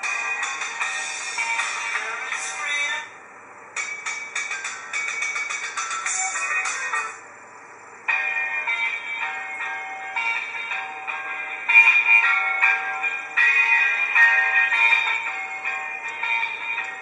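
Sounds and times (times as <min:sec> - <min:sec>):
music from small phone speaker: 0:00.0 - 0:03.1, 0:03.8 - 0:07.2.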